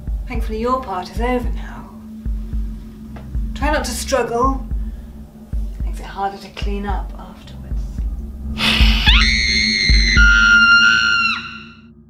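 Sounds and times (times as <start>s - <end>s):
deep booms: 2.3s - 6.1s
low horror drone: 7.0s - 12.0s
woman screaming: 8.6s - 11.8s.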